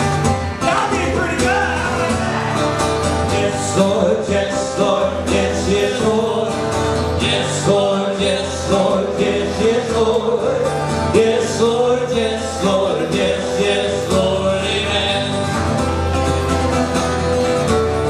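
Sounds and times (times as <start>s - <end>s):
strummed acoustic guitar: 0.0s - 18.0s
man singing: 0.6s - 15.7s.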